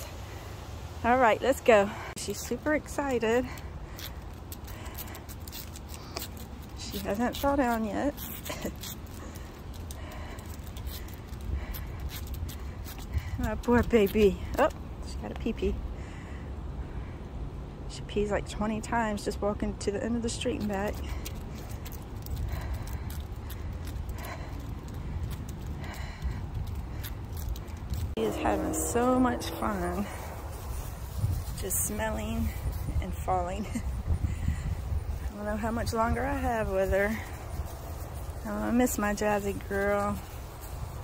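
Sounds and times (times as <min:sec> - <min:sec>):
low steady rumble: 0:00.0 - 0:41.0
footsteps on asphalt: 0:02.0 - 0:15.7, 0:20.1 - 0:41.0
low microphone rumble: 0:27.7 - 0:41.0.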